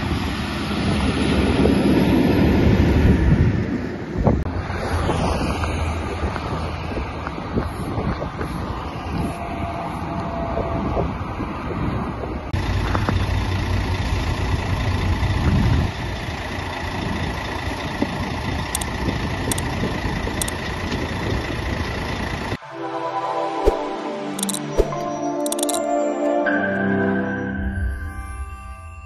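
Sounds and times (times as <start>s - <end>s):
wind buffeting microphone: 0.0s - 13.2s, 15.2s - 16.2s, 16.9s - 22.6s
fire engine running: 0.0s - 22.7s.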